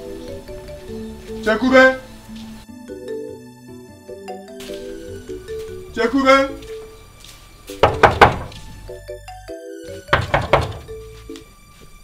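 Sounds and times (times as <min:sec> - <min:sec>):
background music: 0:00.0 - 0:12.0
knocking on wooden door: 0:07.8 - 0:08.7, 0:10.0 - 0:11.0.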